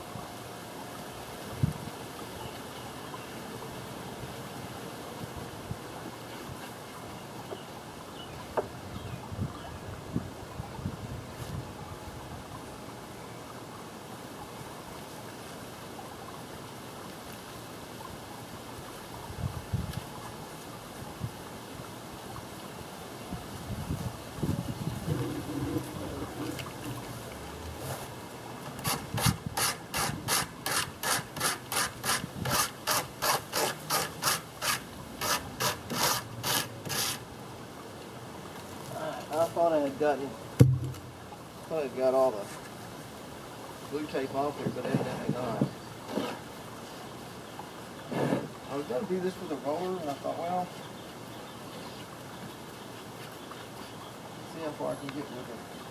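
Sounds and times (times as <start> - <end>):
brush rubbing strokes: 28.8 - 37.2.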